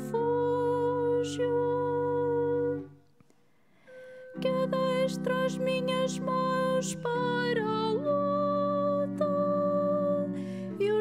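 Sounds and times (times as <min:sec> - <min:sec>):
person singing with vibrato: 0:00.0 - 0:03.1, 0:03.9 - 0:11.0
sustained accompanying chords: 0:00.0 - 0:11.0.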